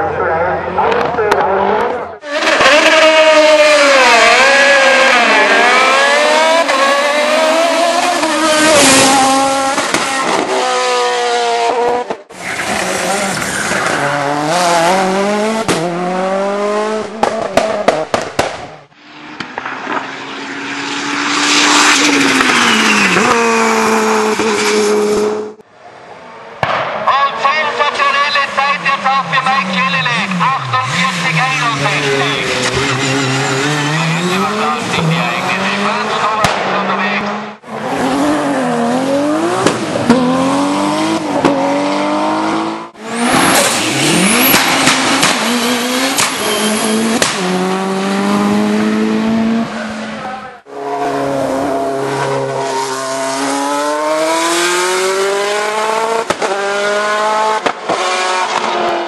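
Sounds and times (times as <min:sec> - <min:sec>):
race car engines revving: 0:00.0 - 0:59.0
exhaust pops and crackles: 0:17.2 - 0:18.8, 0:44.4 - 0:45.5, 0:47.2 - 0:47.4, 0:56.2 - 0:56.6, 0:57.6 - 0:58.7.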